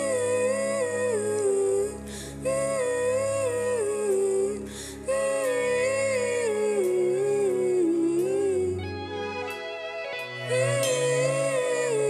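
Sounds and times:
woman singing: 0.0s - 9.5s, 10.4s - 12.0s
soft sustained accompaniment: 0.0s - 12.0s.

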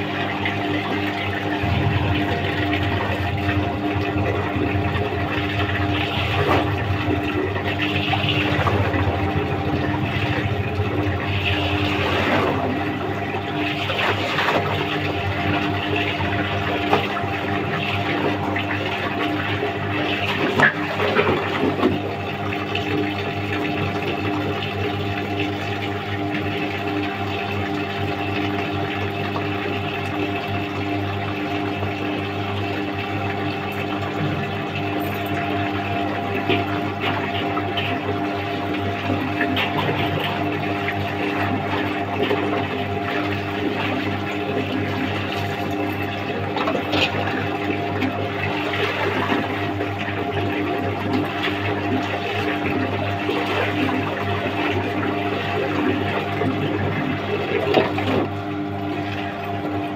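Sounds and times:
clothes rinsed by hand: 0.0s - 59.9s
tap water running and splashing: 0.0s - 59.9s
electric motor hum: 1.5s - 13.3s.

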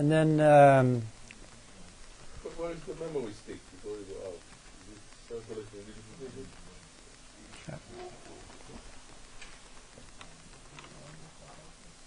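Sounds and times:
small clicks and knocks: 7.5s - 11.6s.

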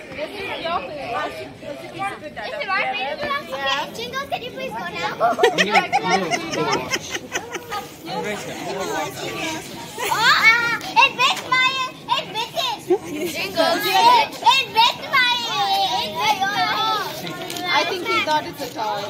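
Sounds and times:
children chattering excitedly: 0.0s - 19.0s.

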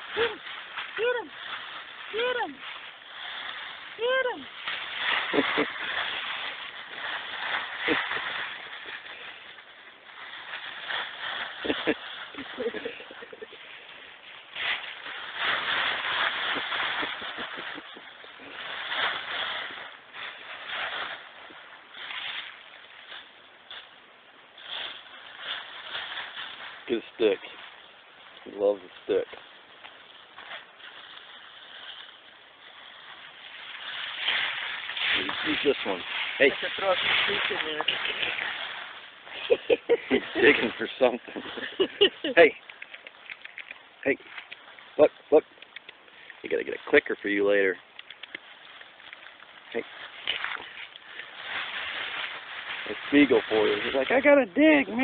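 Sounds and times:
dry leaves rustling and crunching: 0.0s - 55.0s
person laughing: 5.3s - 6.0s, 11.6s - 13.8s, 16.5s - 18.5s, 39.3s - 42.4s.

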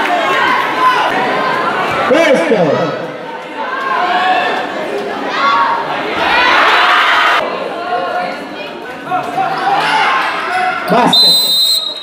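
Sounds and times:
spectators chatting and shouting: 0.0s - 12.0s.

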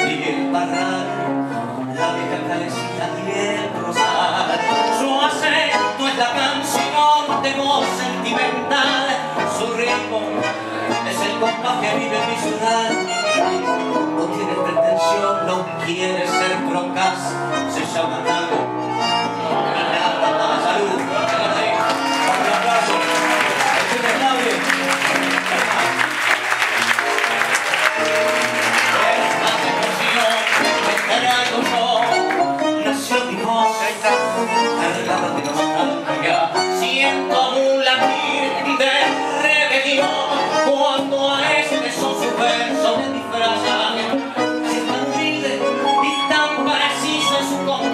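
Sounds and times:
guitar: 0.0s - 47.9s
piano: 0.0s - 47.9s
tango trio playing: 0.0s - 47.9s.

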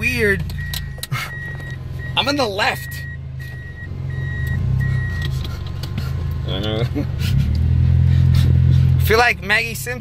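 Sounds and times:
car rumble inside cabin: 0.0s - 10.0s.

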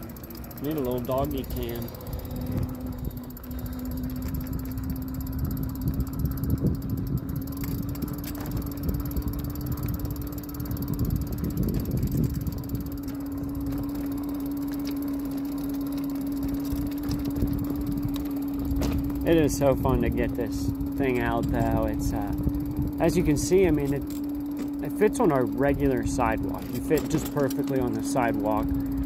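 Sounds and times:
electric bike motor whining: 0.0s - 29.0s
wind and tyre rumble: 0.0s - 29.0s.

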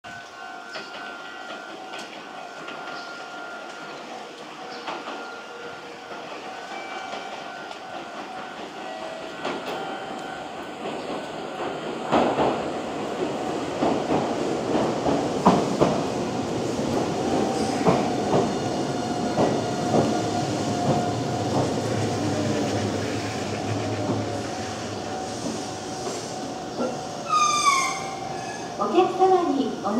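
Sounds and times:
steady train whine: 0.0s - 29.9s
train wheels clicking over rail joints: 0.7s - 26.8s
brake squeal: 27.2s - 28.8s.

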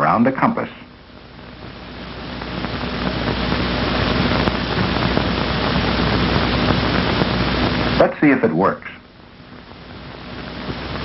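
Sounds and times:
film soundtrack hiss: 0.0s - 11.0s
low hum: 0.8s - 8.1s, 9.0s - 11.0s.

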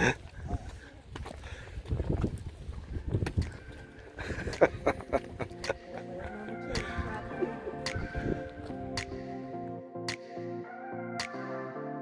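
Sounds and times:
people chuckling and laughing: 0.0s - 0.5s, 4.2s - 8.5s.

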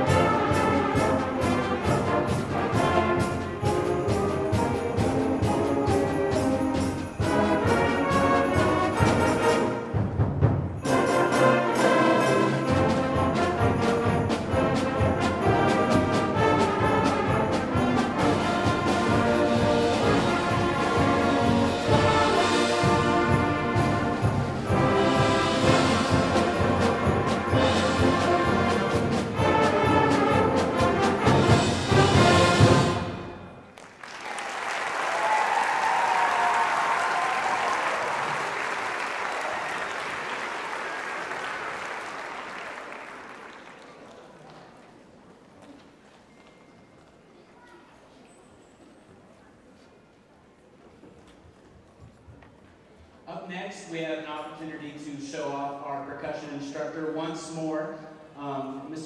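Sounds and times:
concert band playing: 0.0s - 33.6s
audience applause: 33.7s - 44.9s.

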